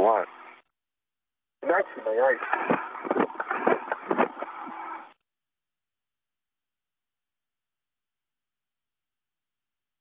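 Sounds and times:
radio hiss: 0.0 - 0.6, 1.6 - 5.1
voice over radio: 1.6 - 2.7.

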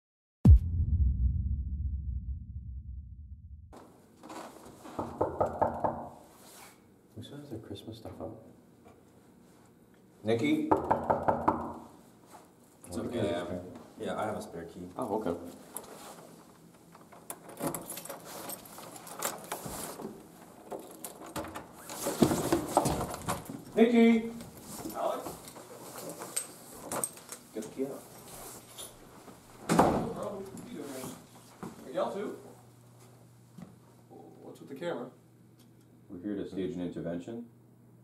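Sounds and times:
knuckles knocking on door: 5.0 - 6.1, 10.7 - 11.8.

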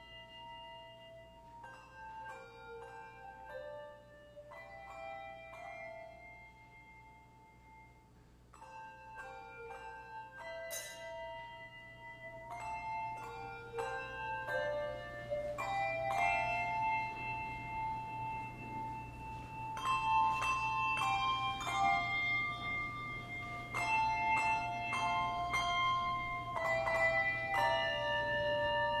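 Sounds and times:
handbell choir ringing chords: 0.0 - 29.0.

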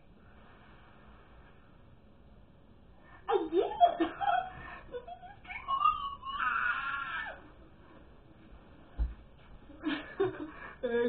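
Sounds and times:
girl squealing: 5.4 - 7.4.

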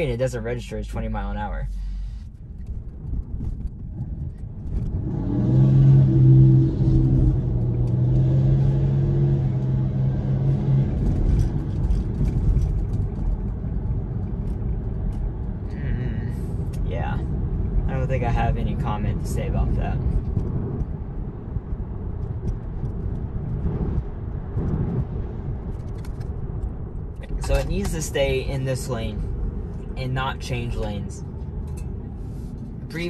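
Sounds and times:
low hum with overtones: 0.0 - 33.0
road and tyre noise in car cabin: 0.0 - 33.0.

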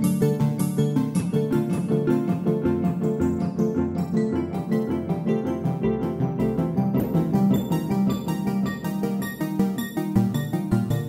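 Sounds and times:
synth notes with echoing delay: 1.4 - 11.0.

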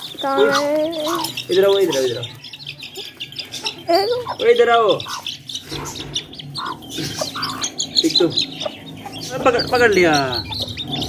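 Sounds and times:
chicks cheeping: 0.0 - 11.0
hen clucking: 0.0 - 11.0.

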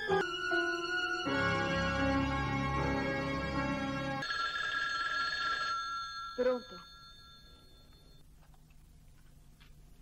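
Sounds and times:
telephone bell ringing: 4.2 - 8.2.

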